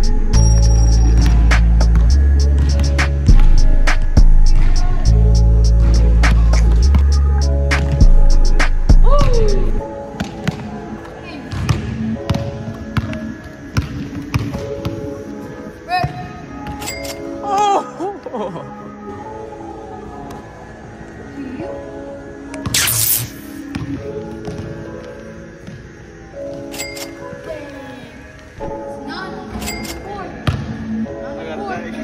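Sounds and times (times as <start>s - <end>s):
music with heavy bass line: 0.0s - 9.8s
basketball bouncing on hardwood floor: 13.8s - 14.6s
shoe squeaks: 16.7s - 17.4s, 26.6s - 27.5s, 29.5s - 30.2s.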